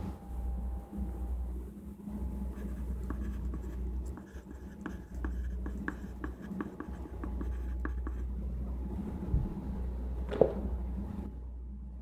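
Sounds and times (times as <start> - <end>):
low steady hum: 0.0 - 12.0
pen scratching on paper: 2.5 - 8.3.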